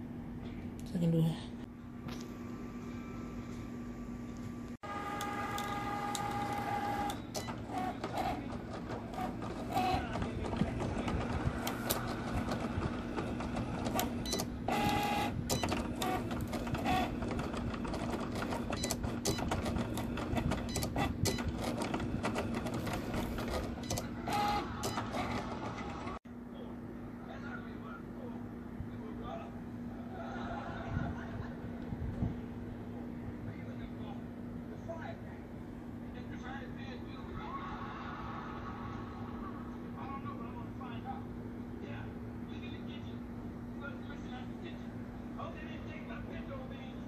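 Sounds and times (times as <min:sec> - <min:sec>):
cutting machine motors whirring: 0:04.8 - 0:26.2.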